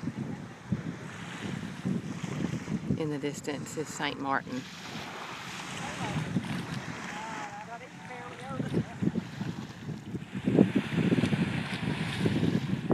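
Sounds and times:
gentle surf on beach: 0.0 - 12.9
wind buffeting microphone: 0.0 - 12.9.

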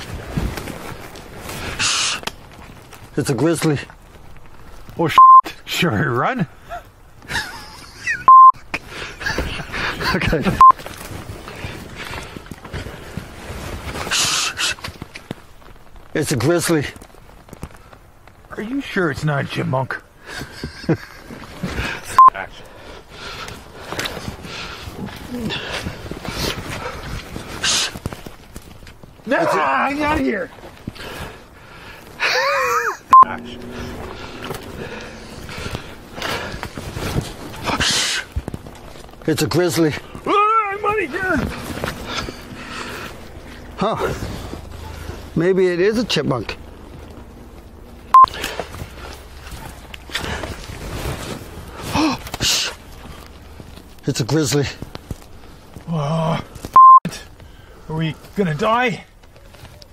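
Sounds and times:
hissing rustle: 0.0 - 5.1, 6.5 - 58.4
people rustling in forest: 0.0 - 59.9
loud electronic beep: 5.2 - 5.4, 33.1 - 34.7
breathy swells: 31.0 - 38.4, 41.0 - 45.4
low rumbles near microphone: 32.8 - 52.0.

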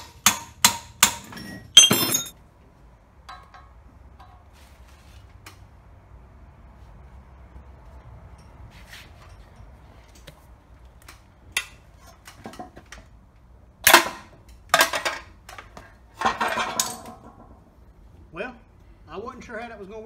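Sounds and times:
hammer striking metal punch: 0.0 - 2.3.

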